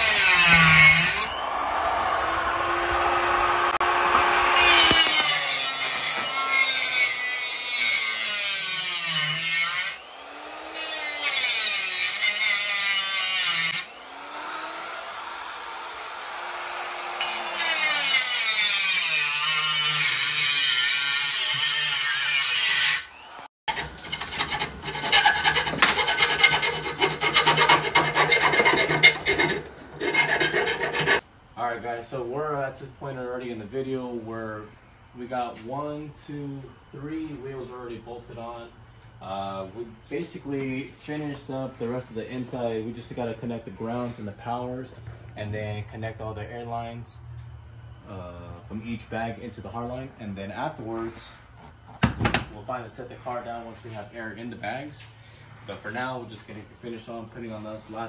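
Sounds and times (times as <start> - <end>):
angle grinder cutting steel: 0.0 - 1.4, 2.3 - 31.2.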